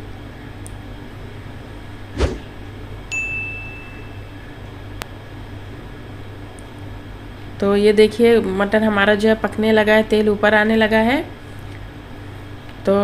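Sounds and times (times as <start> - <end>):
steady low hum: 0.0 - 13.0
clear high ringing tone: 3.1 - 4.8.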